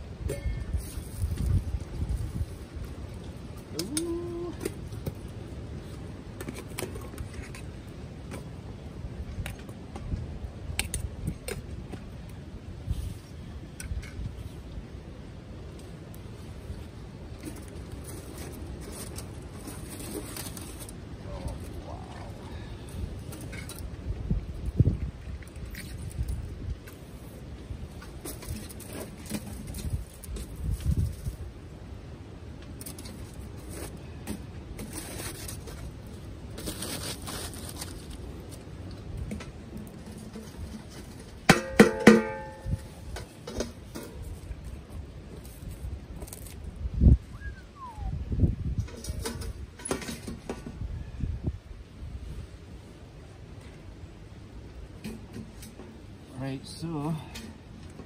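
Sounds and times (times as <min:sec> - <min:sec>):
wind gusting over microphone: 0:00.0 - 0:32.5, 0:33.2 - 0:56.6
sharp ringing metal clang: 0:00.3 - 0:00.7, 0:41.5 - 0:42.8
aluminium foil crinkling: 0:34.9 - 0:38.8
metal pots knocking together: 0:41.5 - 0:42.6.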